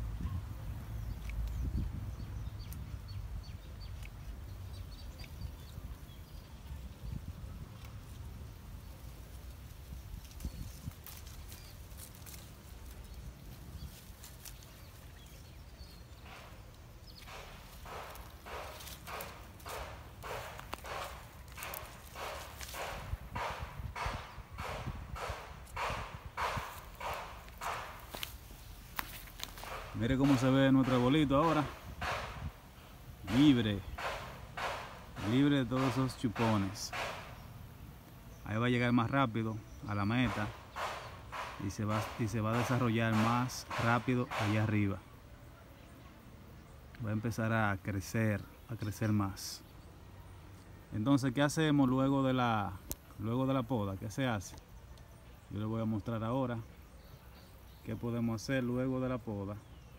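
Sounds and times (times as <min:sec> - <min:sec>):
footsteps on dry leaves: 0:09.1 - 0:23.7, 0:24.7 - 0:30.8.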